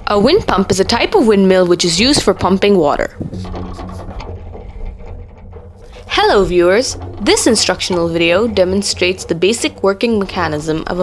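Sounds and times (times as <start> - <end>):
light mechanical ticking: 0.0 - 11.0
wind pump mechanism humming: 0.0 - 11.0.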